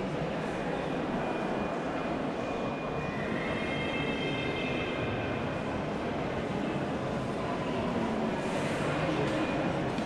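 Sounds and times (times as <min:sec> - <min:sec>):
indoor hall background din: 0:00.0 - 0:10.0.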